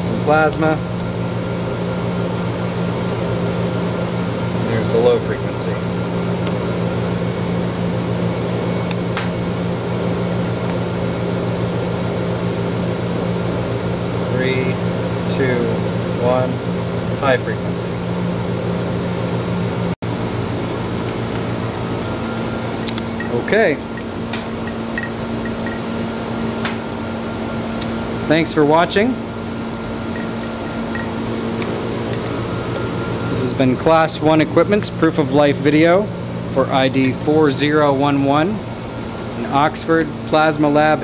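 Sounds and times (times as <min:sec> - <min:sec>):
machine hum: 0:00.0 - 0:41.0
high-pitched whine: 0:20.1 - 0:41.0.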